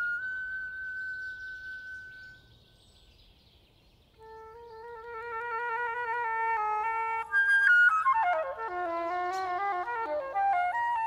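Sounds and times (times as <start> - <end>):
flute playing: 0.0 - 2.5, 4.2 - 11.0
bird chirp: 0.0 - 5.9, 8.8 - 9.9
faint nature ambience: 0.0 - 11.0.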